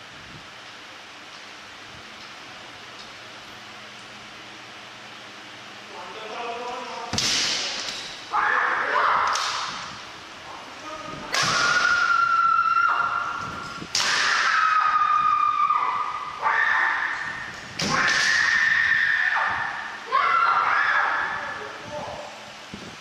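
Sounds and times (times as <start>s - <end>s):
bamboo sword strikes cracking: 7.1s - 8.1s, 11.3s - 12.0s, 13.9s - 14.6s
fighters shouting: 8.3s - 9.4s.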